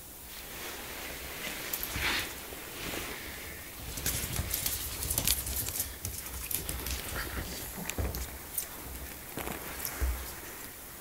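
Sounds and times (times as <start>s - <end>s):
dog claws clicking on wood floor: 3.9s - 10.3s.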